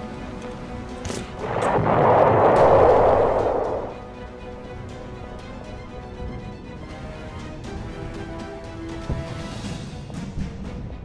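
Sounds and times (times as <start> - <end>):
background music: 0.0 - 11.0
rushing blast: 1.3 - 4.2.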